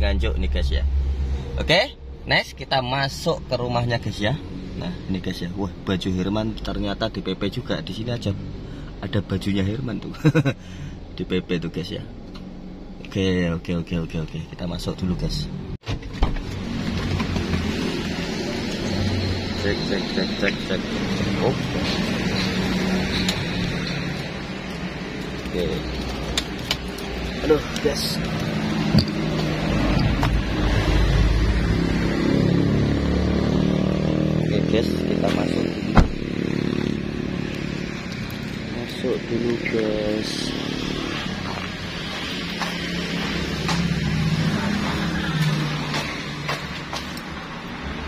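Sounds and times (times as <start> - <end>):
car engine and road rumble: 0.0 - 48.0.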